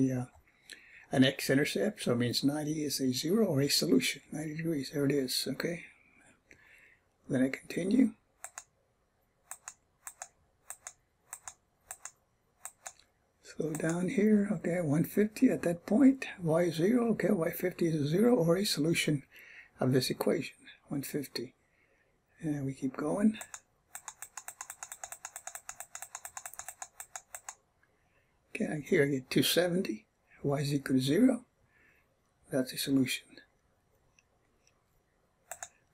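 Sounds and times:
rapid key clicks: 0:08.4 - 0:08.7, 0:09.5 - 0:14.1, 0:23.4 - 0:27.6, 0:35.5 - 0:35.9.

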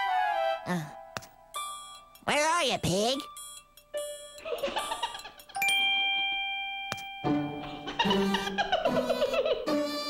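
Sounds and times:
bell-like chime notes: 0:03.2 - 0:07.7.

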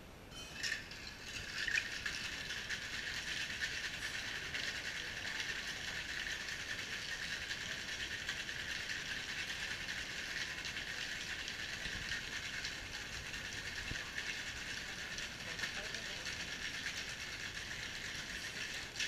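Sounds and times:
ice rattling in cocktail shaker: 0:00.3 - 0:19.0.

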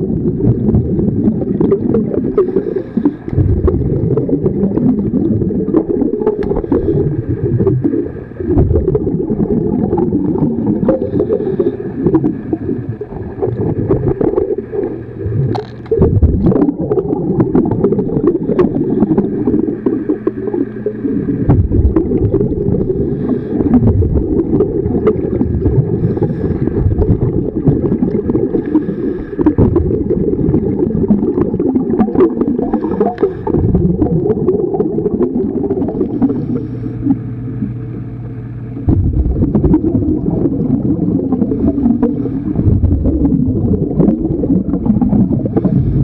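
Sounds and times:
underwater bubbles gurgling: 0:00.0 - 0:46.0
clicks and scrapes: 0:15.4 - 0:16.1.

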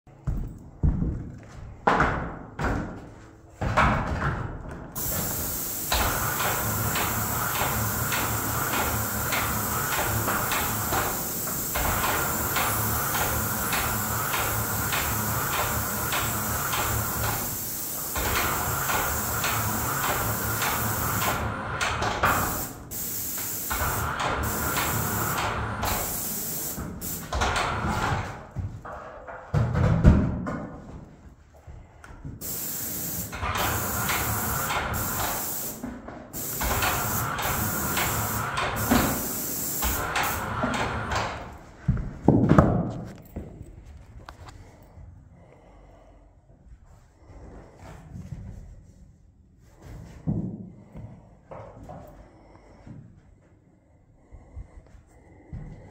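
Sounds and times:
paint sprayer hissing: 0:05.0 - 0:27.8, 0:32.4 - 0:41.6.

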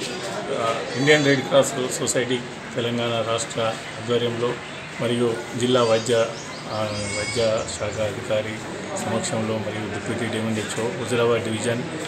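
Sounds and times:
man speaking: 0:00.2 - 0:12.0.

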